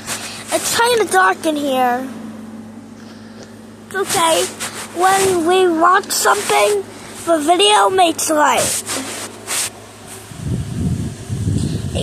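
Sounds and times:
low rubbing against plush toys: 3.9s - 10.3s.

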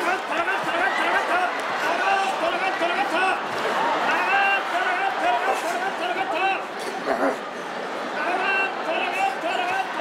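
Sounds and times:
arena crowd: 0.0s - 10.0s.

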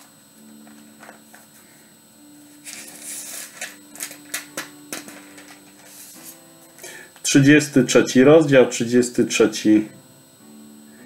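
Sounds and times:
faint guitar music: 0.0s - 11.0s.

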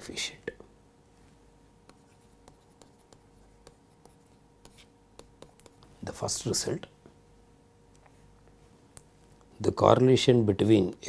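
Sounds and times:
stylus scratching on tablet: 1.8s - 6.0s.

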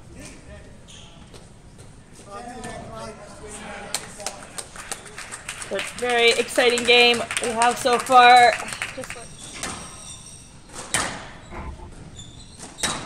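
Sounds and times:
sharp knocks and clicks: 11.0s - 12.1s.

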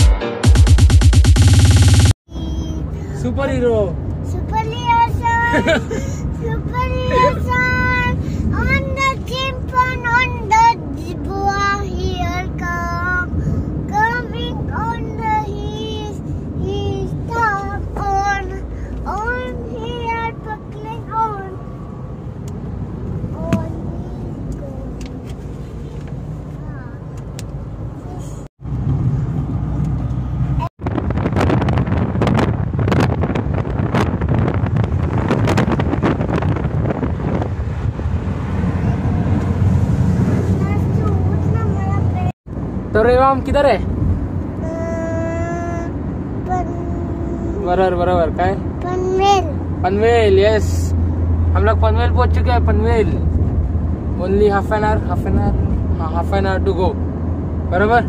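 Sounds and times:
street traffic: 1.4s - 58.0s
child's voice: 2.3s - 3.2s, 4.2s - 21.6s, 23.2s - 25.3s, 26.6s - 27.2s, 28.0s - 28.5s, 40.5s - 42.4s, 44.6s - 50.0s
road noise inside car: 2.3s - 58.0s.

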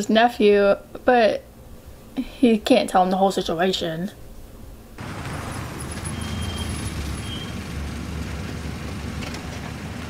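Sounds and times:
car engine rumbling: 5.0s - 10.0s.

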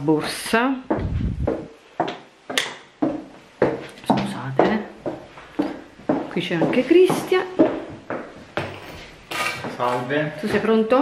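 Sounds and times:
footsteps on hard floor: 0.1s - 10.8s.

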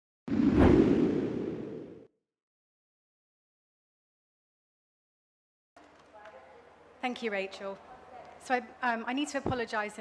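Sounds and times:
low rushing whoosh: 0.3s - 2.1s.

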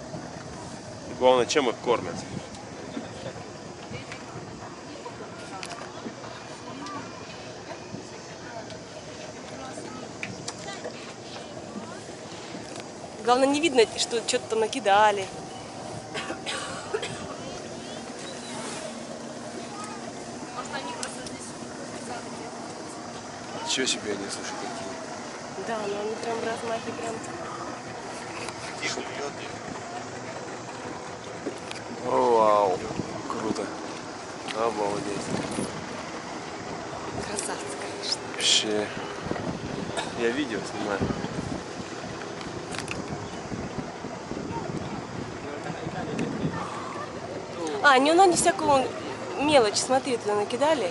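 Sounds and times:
boat engine idling: 0.0s - 50.9s
faint voices: 0.0s - 50.9s
wind: 0.0s - 50.9s.

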